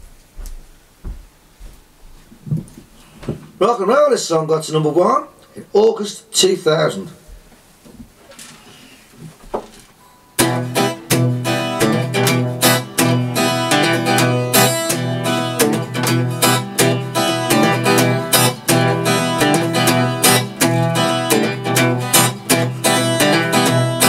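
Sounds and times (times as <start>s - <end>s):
acoustic guitar strumming: 10.4s - 24.0s.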